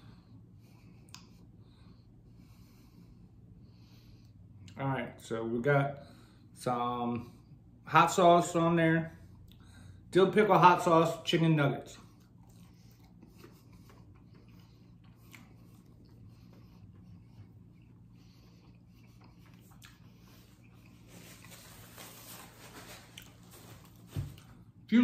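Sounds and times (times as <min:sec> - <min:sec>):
low steady hum: 0:00.0 - 0:25.0
chewing with wet mouth clicks: 0:12.1 - 0:21.0.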